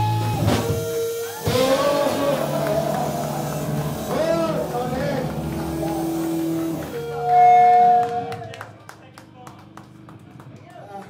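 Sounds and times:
steady held pitched note: 0.0 - 8.5
loud distorted live band: 0.0 - 8.8.

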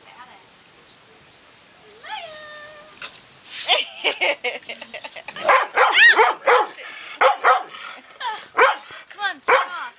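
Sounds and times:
dog barking: 5.4 - 7.7, 8.6 - 8.8, 9.5 - 9.8.

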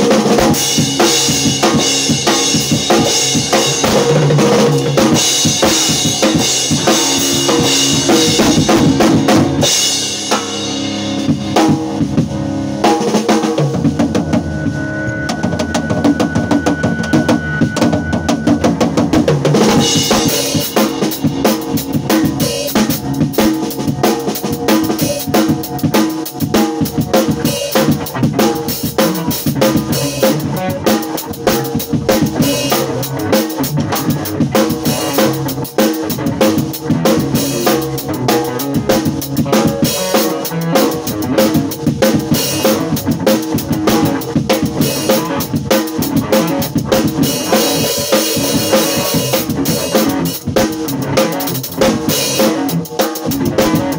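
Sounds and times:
drum kit beat: 0.0 - 53.9
electric guitar: 0.0 - 53.9.

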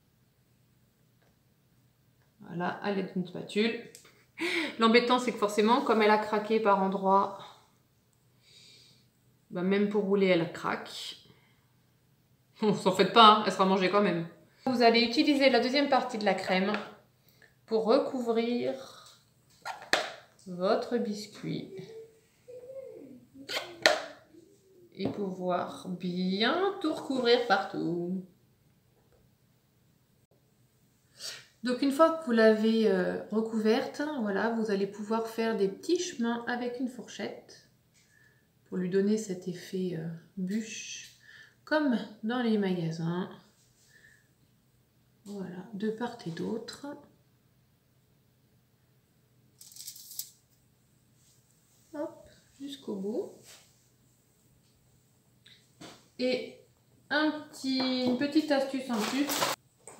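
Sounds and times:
aluminium foil crinkling: 58.8 - 59.6.

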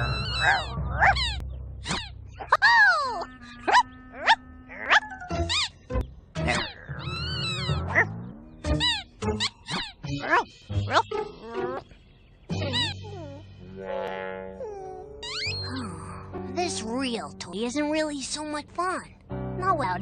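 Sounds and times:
cartoon puppy yips and whimpers: 0.0 - 5.8, 6.4 - 11.8, 12.5 - 13.4, 14.6 - 15.9
gentle children's music: 5.1 - 13.7, 14.8 - 20.0.

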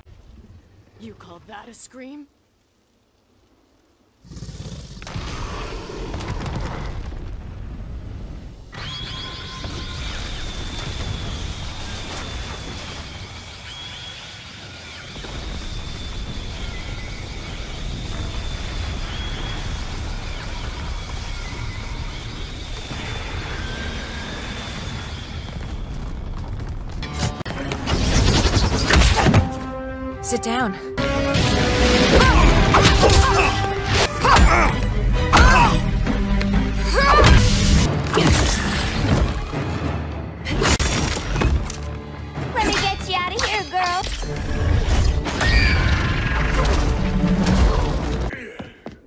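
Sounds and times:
dramatic film score: 5.0 - 49.0
high-pitched shriek: 8.7 - 26.0.

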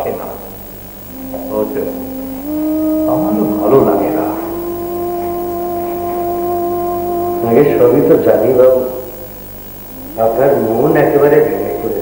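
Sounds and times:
sustained melodic notes: 1.0 - 8.8, 9.8 - 12.0.

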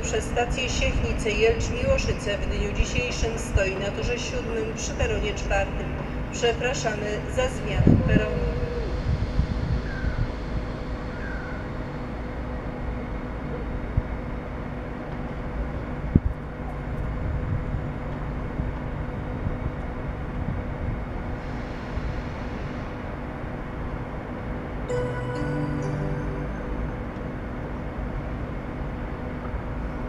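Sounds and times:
faint hum: 0.0 - 30.0
low rumble: 24.9 - 30.0.

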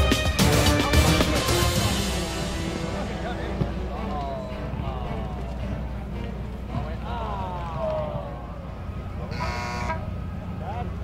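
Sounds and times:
field horn blast: 0.0 - 4.8, 9.0 - 10.4
people shouting: 6.8 - 10.2.

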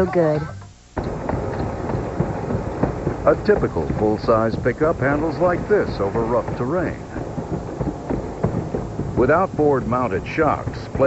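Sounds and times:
low rumbling: 0.9 - 11.0
metal knocks and clunks: 1.0 - 11.0.

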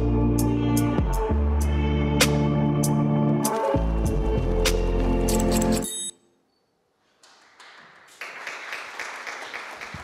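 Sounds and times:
audience applause: 7.2 - 10.0.

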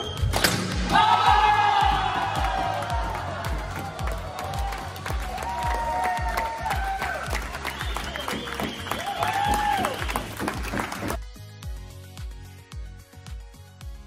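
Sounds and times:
music with steady beat: 0.0 - 14.0
crowd applauding and cheering: 0.8 - 11.2.

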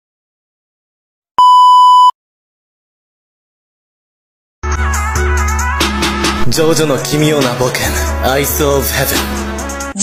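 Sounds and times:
loud electronic beep: 1.4 - 2.1.

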